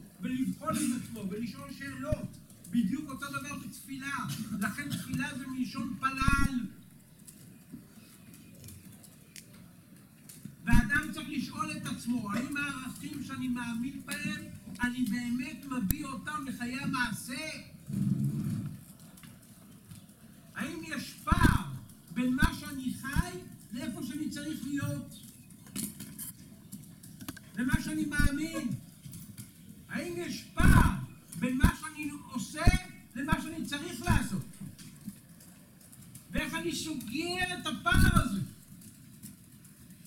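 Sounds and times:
man speaking: 0.2s - 6.8s, 10.7s - 17.7s, 20.6s - 25.2s, 27.6s - 28.8s, 29.9s - 34.7s, 36.3s - 38.6s.

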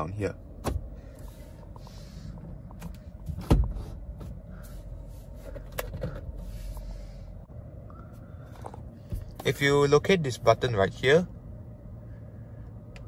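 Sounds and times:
low cabin hum: 0.0s - 13.0s
steering column clunk: 0.5s - 6.8s.

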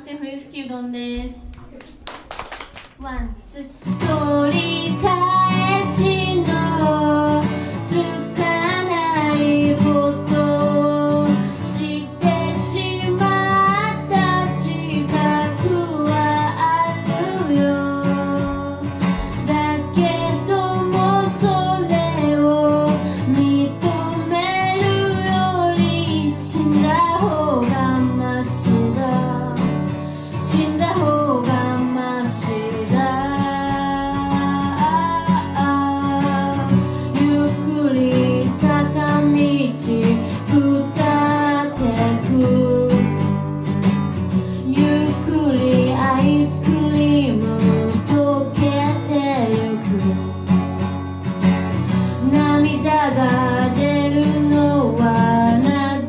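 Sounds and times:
acoustic guitar strumming: 3.0s - 56.0s
person singing: 3.5s - 43.4s.

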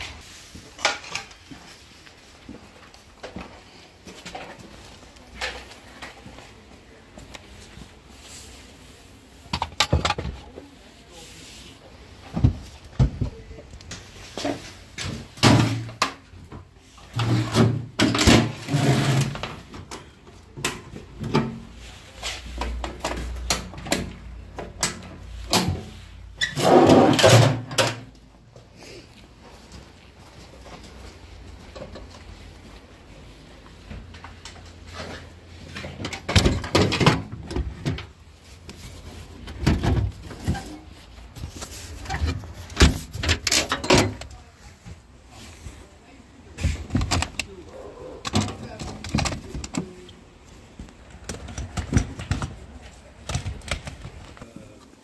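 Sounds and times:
metal toolbox knocks and rattles: 14.4s - 16.3s, 17.1s - 19.9s, 26.6s - 28.1s, 35.7s - 38.1s, 39.4s - 40.8s, 51.2s - 52.7s.

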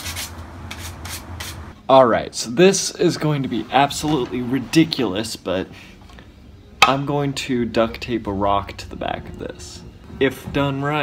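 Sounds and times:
sandpaper rubbing on wood: 0.0s - 1.7s
man speaking: 1.9s - 5.7s.

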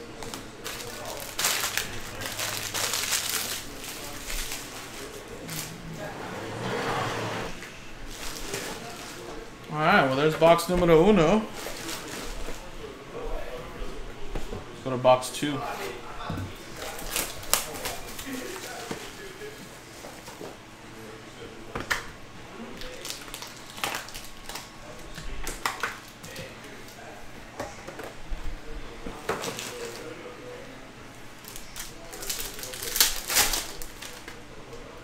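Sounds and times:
foil card packs crinkling: 0.2s - 5.8s, 8.0s - 9.3s, 11.5s - 12.6s, 16.8s - 19.3s, 22.8s - 24.7s, 31.4s - 34.4s
foil pack tearing open: 0.3s - 5.7s, 16.8s - 18.8s, 22.8s - 24.7s, 31.4s - 34.4s.

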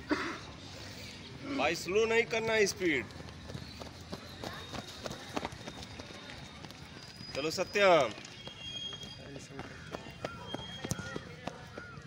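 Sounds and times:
faint outdoor background: 0.0s - 12.0s
runners footsteps on dirt: 2.4s - 12.0s.

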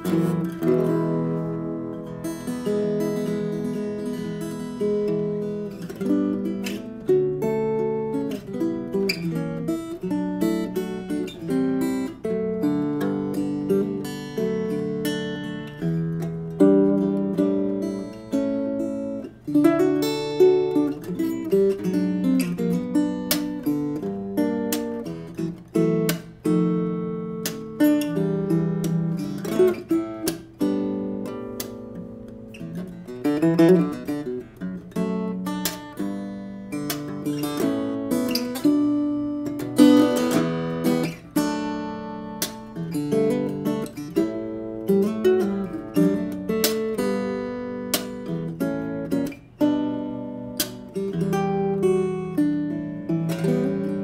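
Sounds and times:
fingerstyle acoustic guitar: 0.0s - 54.0s.

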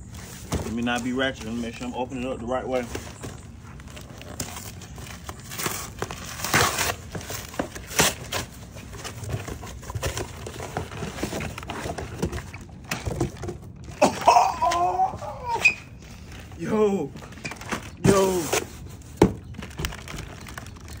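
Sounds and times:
packaging crinkling and rustling: 0.0s - 21.0s
packaging ripping: 3.8s - 12.9s, 17.2s - 21.0s.

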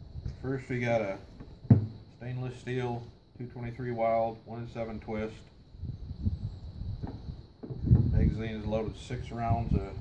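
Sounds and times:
metal parts thumping on wooden bench: 1.4s - 2.0s.

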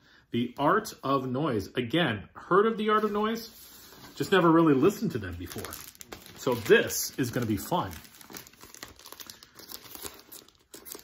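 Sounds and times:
record sleeves rustling: 2.7s - 11.0s.

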